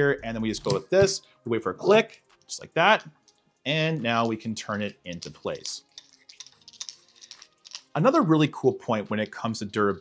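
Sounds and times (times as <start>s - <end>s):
metal parts clicking and scraping: 4.2s - 8.0s.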